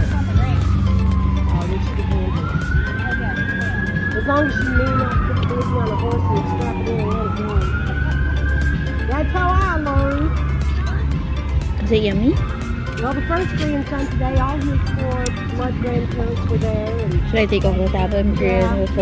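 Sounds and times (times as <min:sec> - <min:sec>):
siren wailing: 0:00.3 - 0:19.0.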